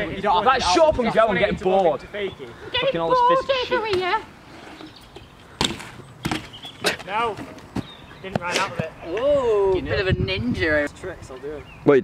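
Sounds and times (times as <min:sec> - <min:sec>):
bike hitting concrete knock: 0:05.6 - 0:08.9.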